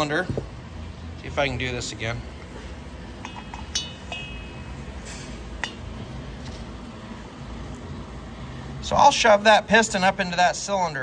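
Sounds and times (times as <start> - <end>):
piston clinking against cylinder: 3.2 - 5.9.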